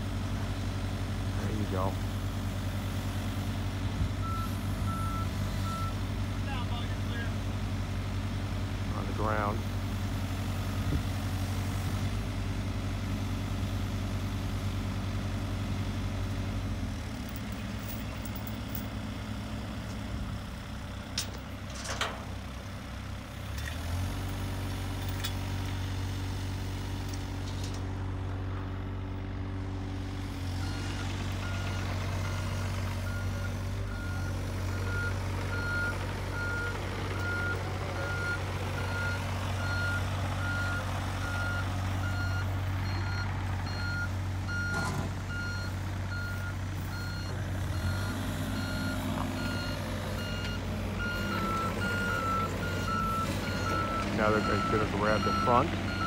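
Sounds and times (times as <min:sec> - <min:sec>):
diesel engines rumbling: 0:00.0 - 0:56.0
back-up alarm beeping: 0:31.5 - 0:56.0.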